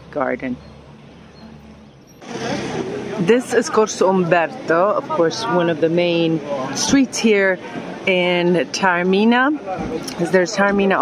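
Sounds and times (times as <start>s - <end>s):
crowded street bustle: 0.0s - 11.0s
indistinct voices of passers-by: 0.0s - 11.0s.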